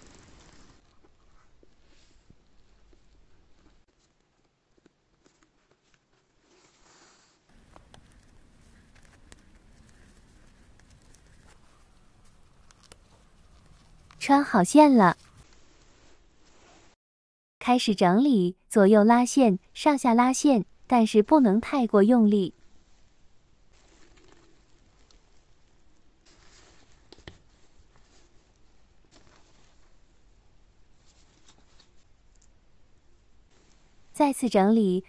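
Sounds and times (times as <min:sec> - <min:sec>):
cord rustling through knot: 0:00.0 - 0:17.0, 0:22.6 - 0:34.1.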